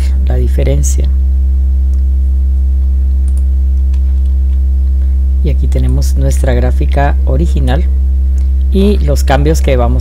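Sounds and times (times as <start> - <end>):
low electrical mains hum: 0.0 - 10.0.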